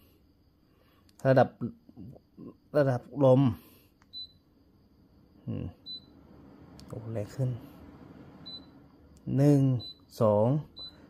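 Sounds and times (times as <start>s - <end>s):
high electronic beeps: 8.4s - 8.8s, 9.7s - 10.1s.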